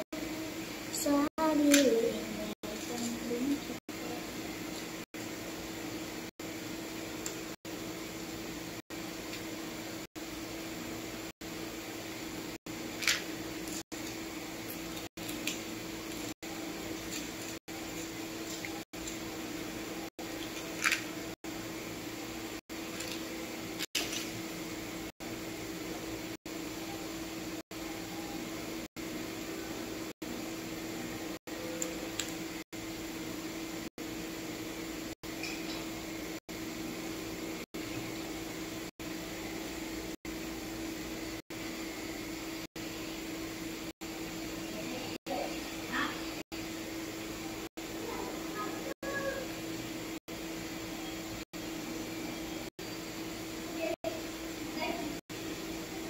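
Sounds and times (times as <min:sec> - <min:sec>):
room hum with low tone: 0:00.0 - 0:56.0.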